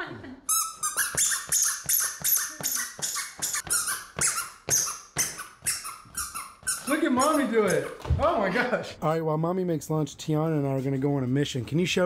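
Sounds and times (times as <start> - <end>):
foam pogo jumper squeaking: 0.5 - 8.0.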